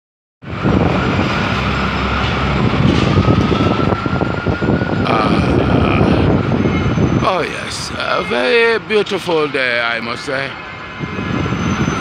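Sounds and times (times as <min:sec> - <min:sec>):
bus engine running: 0:00.4 - 0:09.5, 0:10.1 - 0:12.0
city street traffic: 0:00.4 - 0:12.0.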